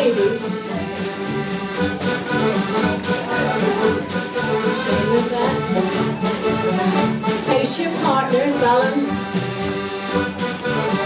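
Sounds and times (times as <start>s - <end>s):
folk dance band playing: 0.0s - 11.0s.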